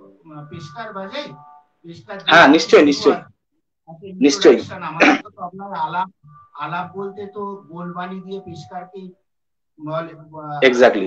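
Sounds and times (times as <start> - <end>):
man talking into a microphone: 2.1 - 3.3, 9.9 - 11.0.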